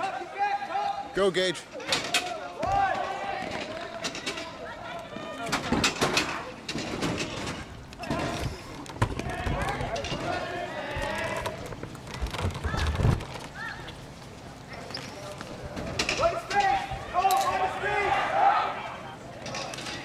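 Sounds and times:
spectators and players calling: 0.0s - 20.0s.

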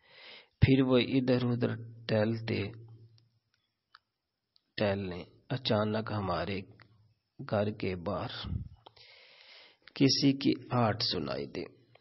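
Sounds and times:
man speaking: 0.6s - 2.9s, 4.7s - 6.8s, 7.4s - 8.8s, 10.0s - 11.8s.

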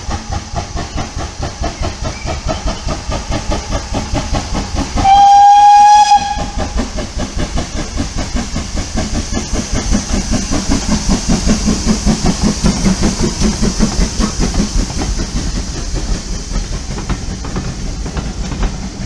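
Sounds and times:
steam locomotive exhaust beating: 0.0s - 19.0s
steam whistle blast: 5.0s - 6.6s.

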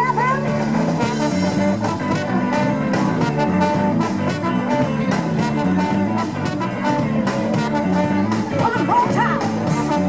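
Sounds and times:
bass guitar: 0.0s - 10.0s
brass horn: 0.0s - 10.0s
electric guitars: 0.0s - 10.0s
drumbeat: 0.4s - 10.0s.

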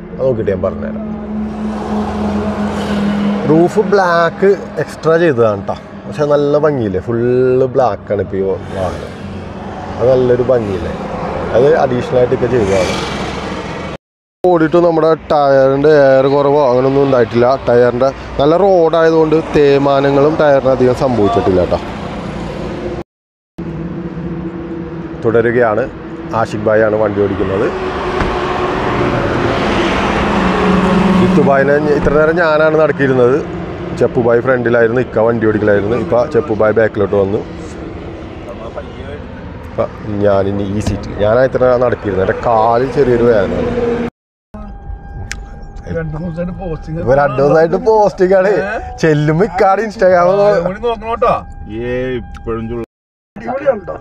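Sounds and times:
motor vehicle rumble: 0.0s - 14.0s, 23.6s - 52.7s
rushing noise: 0.7s - 6.4s.

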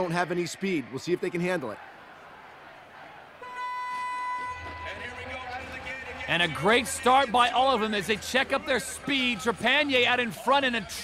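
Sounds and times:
buzzy electronic start horn: 3.4s - 5.7s.

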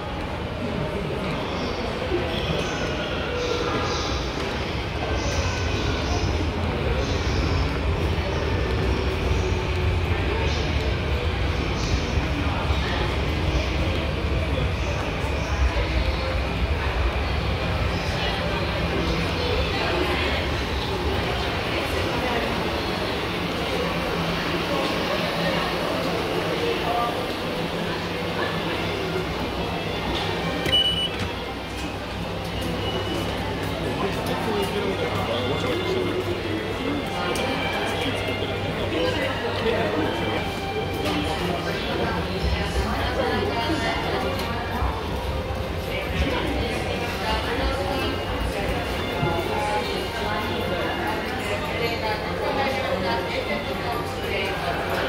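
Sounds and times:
background hubbub: 0.0s - 55.0s
station concourse hum: 0.0s - 55.0s
card reader beep: 30.6s - 31.3s.

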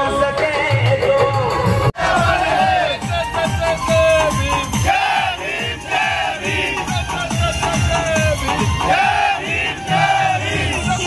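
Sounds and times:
dj music with pounding bass: 2.0s - 11.0s
men shouting and cheering: 2.0s - 11.0s.

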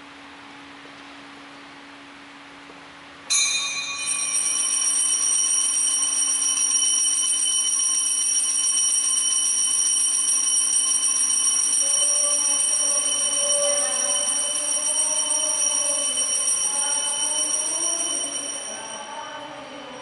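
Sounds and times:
bell ringing continuously: 3.3s - 20.0s.

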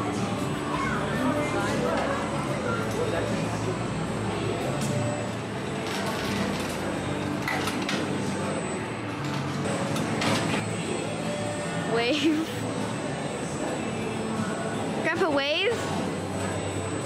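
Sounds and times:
indistinct crowd chatter: 0.0s - 17.0s
steady hum: 0.0s - 17.0s.

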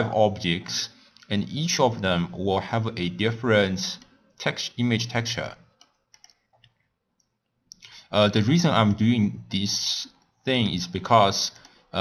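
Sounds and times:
computer mouse clicks: 5.7s - 7.9s, 11.5s - 11.8s.

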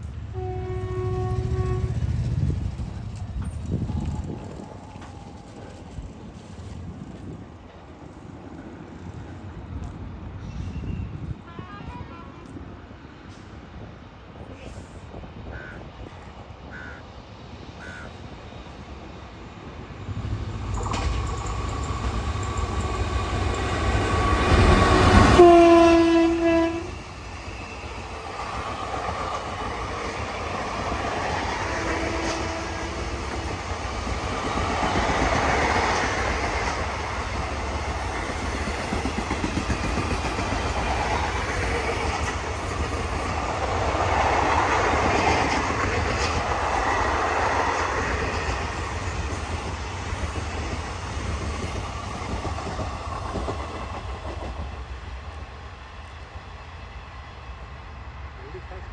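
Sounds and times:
train coaches clickety-clack: 0.0s - 16.7s, 20.1s - 56.5s
train horn: 0.3s - 2.2s, 24.2s - 27.1s, 31.7s - 33.6s.

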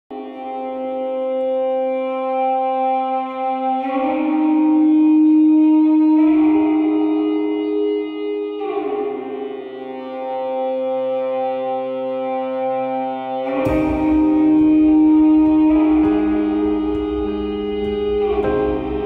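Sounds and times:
slow instrumental held chords: 0.1s - 19.0s.

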